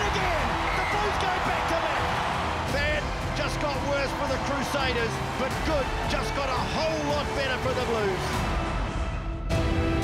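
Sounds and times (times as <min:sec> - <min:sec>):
crowd cheering and shouting: 0:00.0 - 0:10.0
music track: 0:00.0 - 0:10.0.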